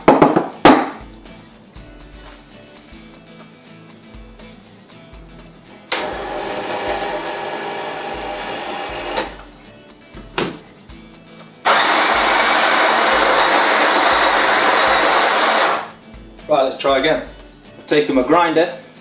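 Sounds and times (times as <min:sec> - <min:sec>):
electric coffee grinder running: 0:06.0 - 0:09.4, 0:11.7 - 0:15.9
steady motor hum: 0:06.0 - 0:09.4, 0:11.7 - 0:15.9.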